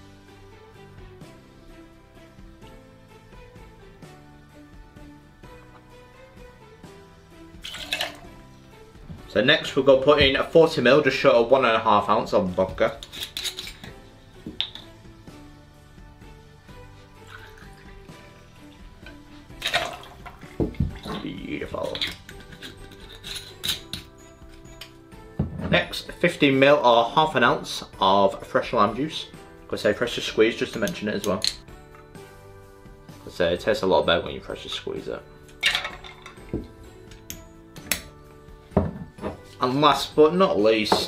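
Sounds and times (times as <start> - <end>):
background music: 0.0 - 41.0
bottle and bar tools clinking: 7.6 - 8.4, 12.8 - 15.0, 17.2 - 26.2, 30.6 - 32.2, 34.6 - 39.7, 40.7 - 41.0
liquid splashing over ice: 7.6 - 8.4, 17.1 - 18.8, 19.5 - 22.2.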